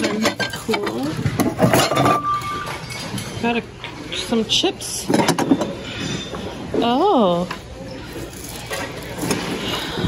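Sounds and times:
dishes and glassware clinking: 0:00.0 - 0:03.6.

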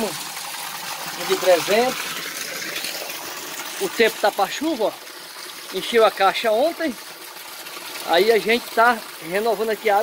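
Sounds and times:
water jet splashing into tank: 0:00.0 - 0:10.0.

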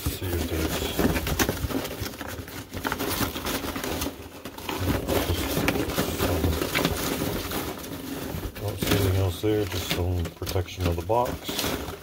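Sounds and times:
hands rummaging through cardboard: 0:00.0 - 0:12.0.

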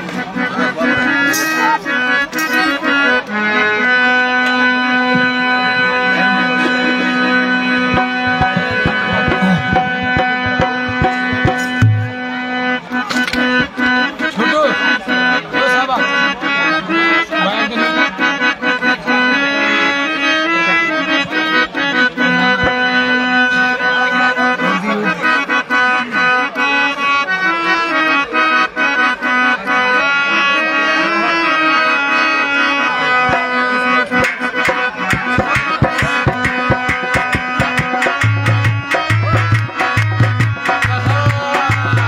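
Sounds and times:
harmonium melody over drone: 0:00.0 - 0:42.0
hand drum beating: 0:07.6 - 0:12.2, 0:34.2 - 0:42.0.

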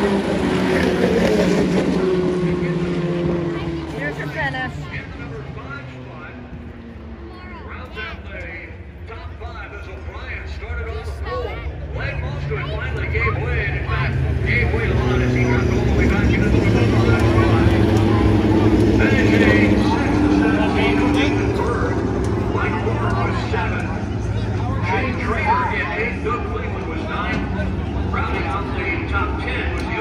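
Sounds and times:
race car engines passing: 0:00.0 - 0:30.0
people talking: 0:01.8 - 0:06.4, 0:07.3 - 0:30.0.

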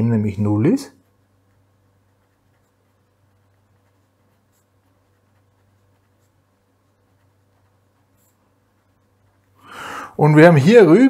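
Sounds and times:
low steady hum: 0:00.0 - 0:11.0
pen scratching on paper: 0:01.0 - 0:09.6.

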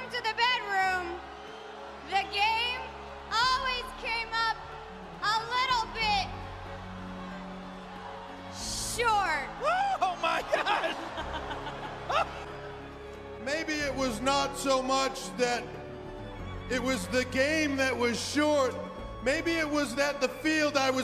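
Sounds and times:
low sustained background music: 0:00.0 - 0:21.0.

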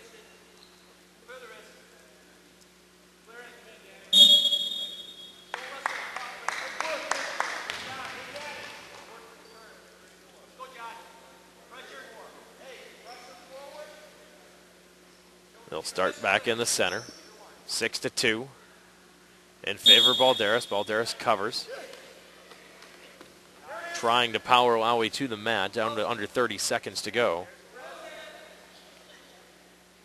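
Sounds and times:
referee's whistle: 0:04.1 - 0:05.5, 0:19.8 - 0:20.9
sharp claps or slaps: 0:05.5 - 0:09.1.

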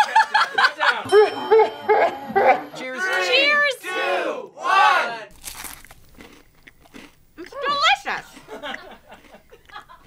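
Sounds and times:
crunchy bite: 0:05.3 - 0:07.2
faint chewing: 0:05.3 - 0:10.0.

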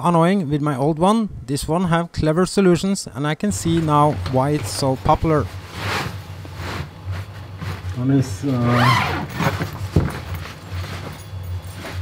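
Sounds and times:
fabric rustling: 0:03.9 - 0:12.0
zip opening: 0:08.5 - 0:12.0.

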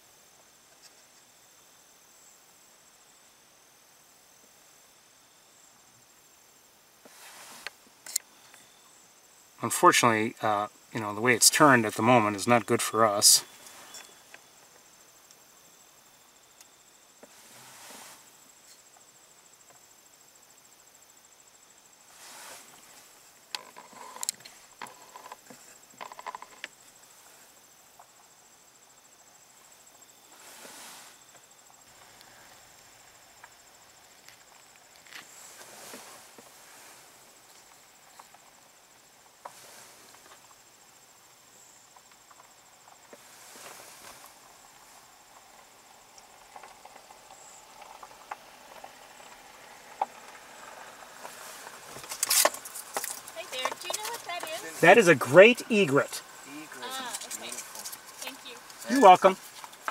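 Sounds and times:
high insect drone: 0:00.0 - 0:59.9.

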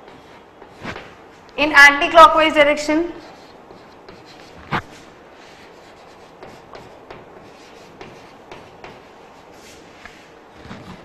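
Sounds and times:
chalk scratching on blackboard: 0:00.0 - 0:01.0, 0:03.1 - 0:11.0.

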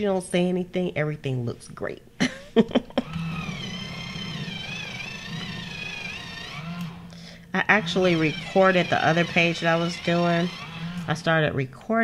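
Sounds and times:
person laughing: 0:02.2 - 0:03.3
electric pencil sharpener whining: 0:02.9 - 0:11.5.

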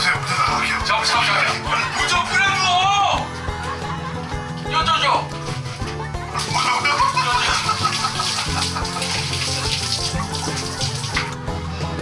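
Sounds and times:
background music: 0:00.0 - 0:12.0
shower spraying water: 0:06.4 - 0:11.4.

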